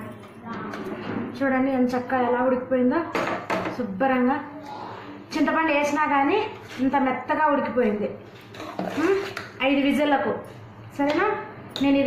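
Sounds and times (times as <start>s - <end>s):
woman talking: 0.0s - 8.2s, 8.8s - 12.0s.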